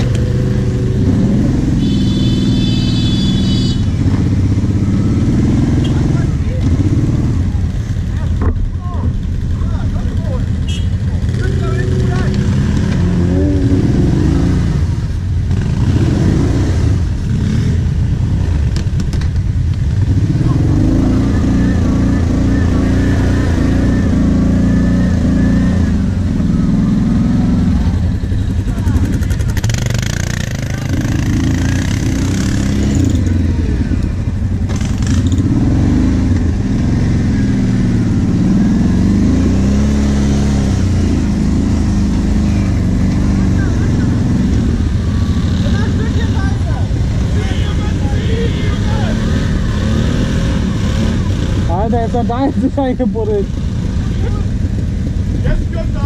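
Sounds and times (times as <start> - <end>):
quad engines revving: 0.0 - 56.0.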